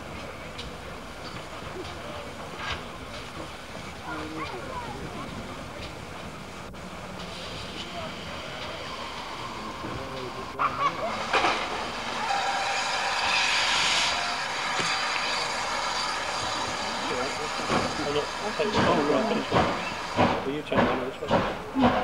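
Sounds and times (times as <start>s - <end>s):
bystanders talking: 0.0s - 22.0s
steam hissing: 0.0s - 22.0s.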